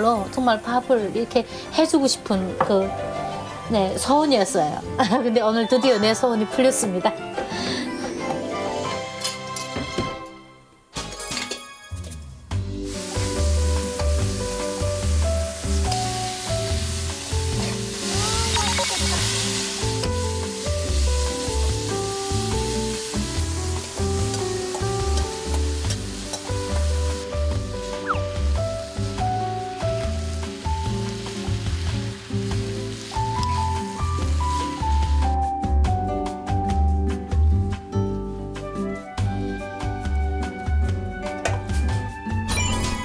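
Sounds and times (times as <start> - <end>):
vegetables sizzling in a pan: 12.7 - 35.4.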